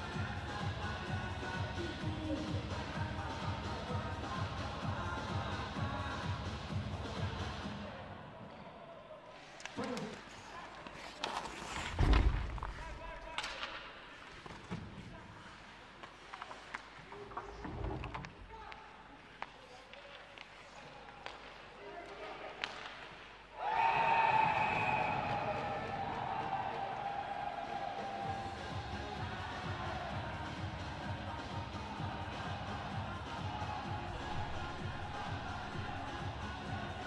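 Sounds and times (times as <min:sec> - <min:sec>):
background music with a steady beat: 0:00.0 - 0:08.1, 0:24.2 - 0:37.0
loud thud: 0:11.9 - 0:13.0.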